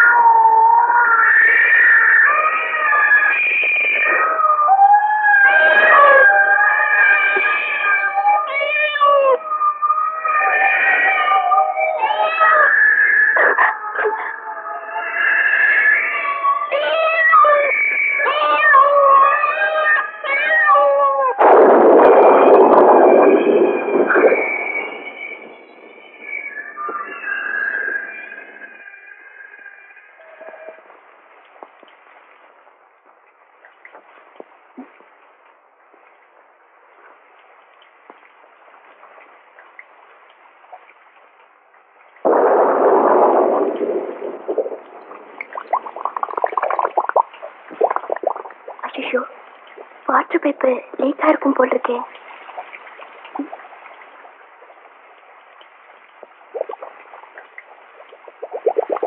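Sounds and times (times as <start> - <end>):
wavering high yowling cries: 0.0 - 21.4
loud rush of noise: 21.4 - 28.6, 42.2 - 48.8.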